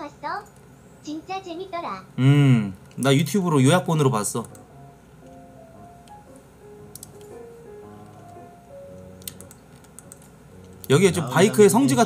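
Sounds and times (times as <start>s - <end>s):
computer keyboard clicks: 4.4s - 4.6s, 6.9s - 7.4s, 9.2s - 10.9s.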